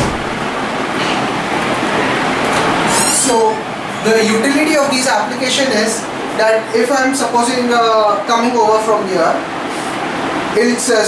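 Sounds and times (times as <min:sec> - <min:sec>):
steady rushing noise: 0:00.0 - 0:02.9.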